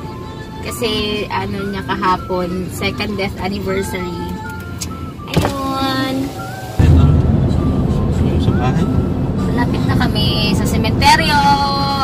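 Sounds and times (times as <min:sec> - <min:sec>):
road and wind noise inside car: 0:00.0 - 0:12.0.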